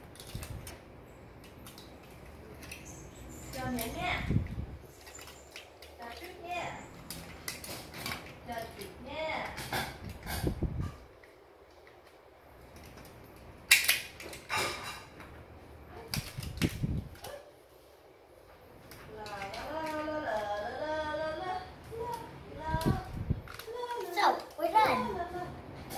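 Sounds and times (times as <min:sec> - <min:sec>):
plastic toy pieces clicking: 0:00.0 - 0:00.8, 0:01.4 - 0:02.9, 0:07.0 - 0:08.8, 0:12.7 - 0:14.4.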